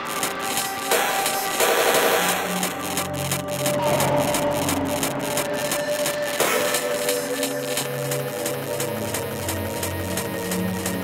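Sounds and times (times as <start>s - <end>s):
low held drone: 0.0s - 11.0s
noisy electronic texture: 0.0s - 11.0s
steady higher tone: 0.0s - 11.0s.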